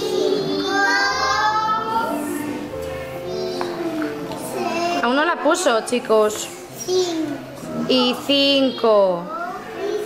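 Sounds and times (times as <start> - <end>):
children chanting in sing-song: 0.0 - 5.0, 9.3 - 10.0.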